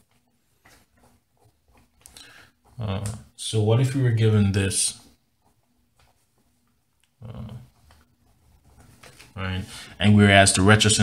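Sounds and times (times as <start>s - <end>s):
man saying uh: 7.2s - 7.7s.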